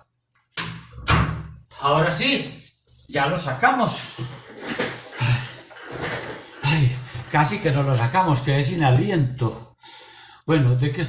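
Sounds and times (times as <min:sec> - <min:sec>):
man breathing hard: 0:09.8 - 0:10.5.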